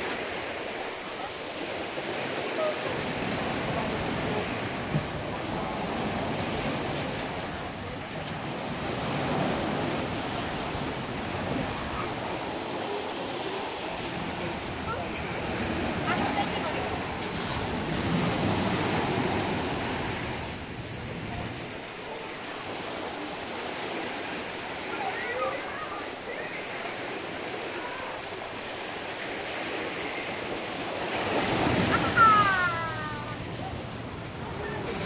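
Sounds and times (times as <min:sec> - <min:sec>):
small waves breaking on shore: 0:00.0 - 0:35.0.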